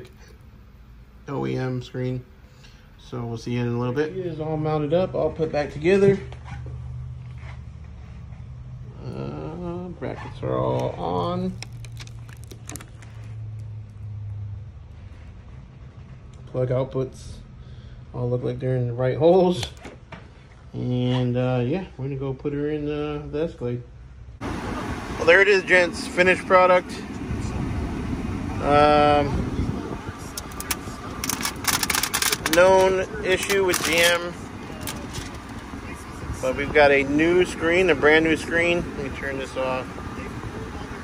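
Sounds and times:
plastic film peeling and crinkling: 11.1s - 14.1s, 30.4s - 34.2s.

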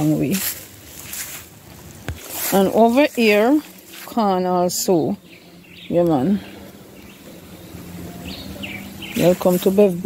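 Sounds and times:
small birds chirping: 2.2s - 10.0s.

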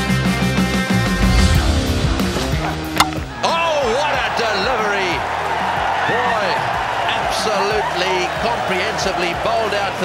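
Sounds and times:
rock music: 0.0s - 7.0s
cricket ball hitting stumps: 2.9s - 3.3s.

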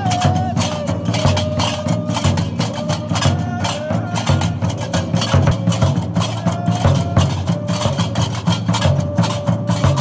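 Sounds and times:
low drum strokes: 0.0s - 10.0s.

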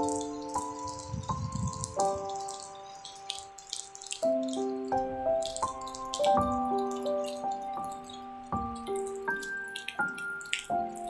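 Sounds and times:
calm music of held chords: 0.0s - 11.0s
patter of drips: 0.0s - 11.0s.

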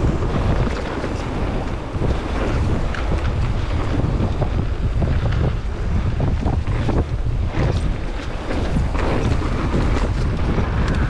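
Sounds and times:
tyres rumbling on dirt trail: 0.0s - 11.0s
wind buffeting microphone: 0.0s - 11.0s
bike knocks and rattles: 1.9s - 11.0s.

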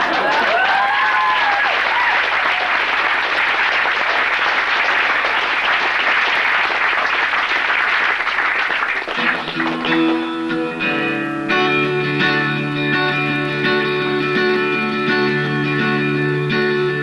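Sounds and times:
audience cheering: 0.0s - 10.2s
audience applauding: 0.0s - 10.4s.

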